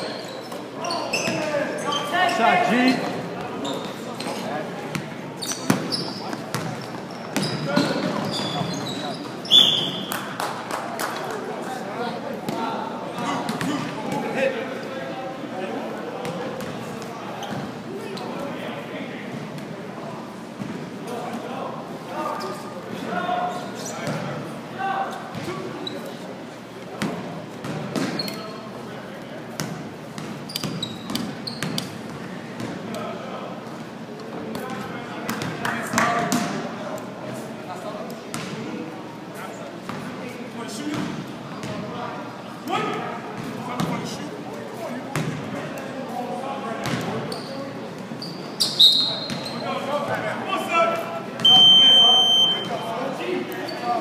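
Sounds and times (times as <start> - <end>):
players' voices echoing: 0.0 - 30.3, 49.0 - 54.0
basketball bouncing on court: 4.9 - 8.7, 40.9 - 41.8, 45.1 - 45.4, 46.8 - 47.2
buzzer: 51.4 - 52.8.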